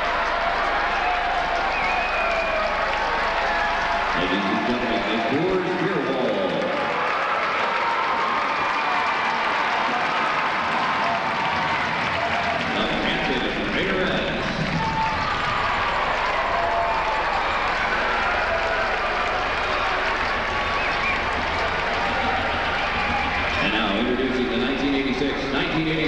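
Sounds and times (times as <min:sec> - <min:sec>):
crowd cheering and shouting: 0:00.0 - 0:26.0.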